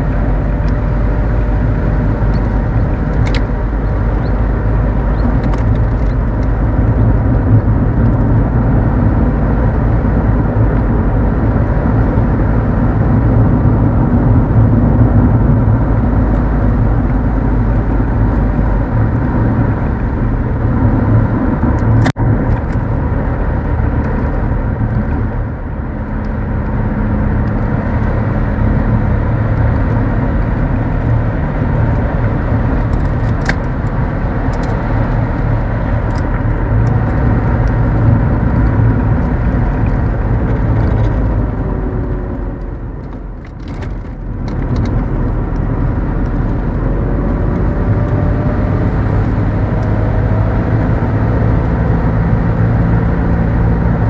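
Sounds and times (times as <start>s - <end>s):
car engine and tyre rumble: 0.0s - 54.0s.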